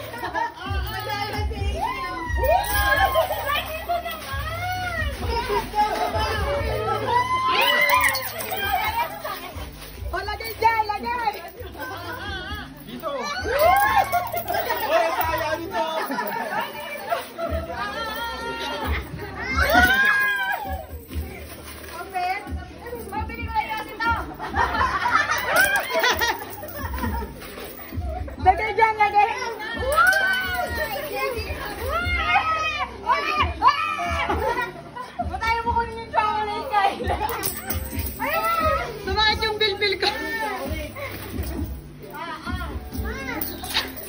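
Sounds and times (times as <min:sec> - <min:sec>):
crowd of voices talking: 0:00.0 - 0:44.0
children shouting and squealing: 0:01.3 - 0:10.0, 0:11.9 - 0:21.2, 0:29.4 - 0:35.7, 0:36.7 - 0:39.1.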